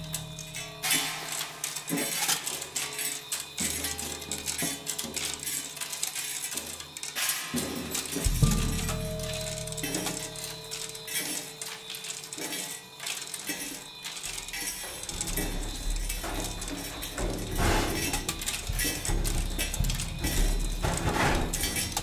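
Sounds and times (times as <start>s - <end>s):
metal objects rattling on drums: 0.0s - 22.0s.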